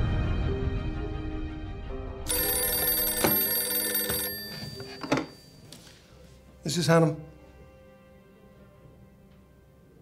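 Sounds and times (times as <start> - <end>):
desk telephone bell ringing: 2.3 - 5.8.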